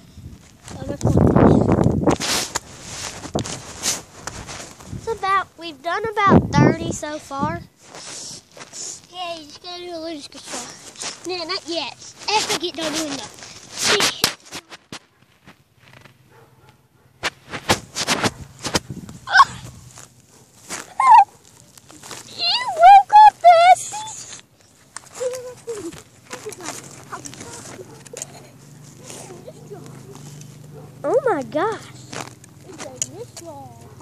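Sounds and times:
knocks and rustles: 0.3s - 5.2s, 10.3s - 22.3s, 24.5s - 34.0s
high wavering vocal squeals: 19.3s - 19.7s, 20.9s - 21.3s.

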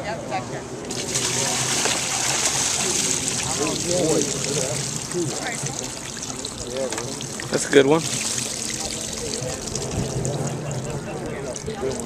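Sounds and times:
water pouring and trickling: 0.9s - 12.0s.

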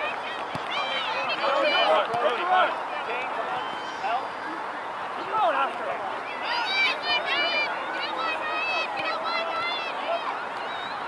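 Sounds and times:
outdoor background noise: 0.0s - 11.0s
people shouting and calling: 0.0s - 11.0s.

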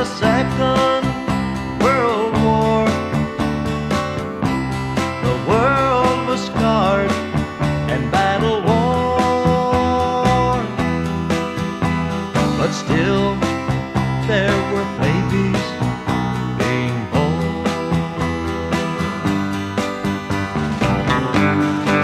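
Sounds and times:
country music with guitar: 0.0s - 22.0s.

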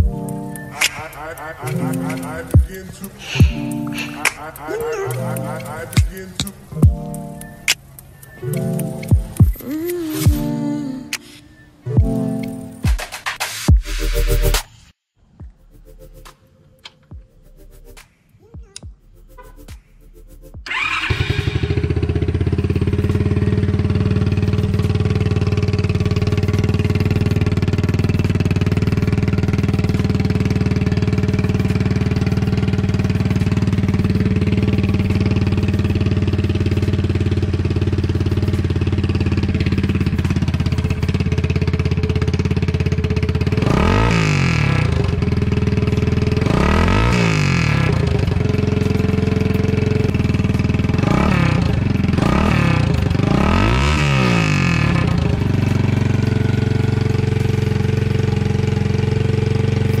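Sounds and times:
engine revving: 20.6s - 60.0s
mini bike engine idling: 20.7s - 60.0s.

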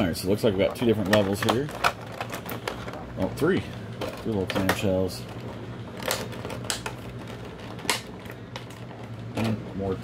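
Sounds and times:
plastic trays crinkling and clicking: 0.0s - 9.6s
plastic snapping: 6.0s - 8.9s.

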